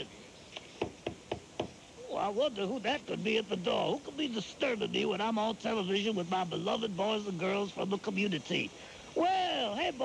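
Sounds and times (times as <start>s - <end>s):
knocking on door: 0.8s - 1.8s.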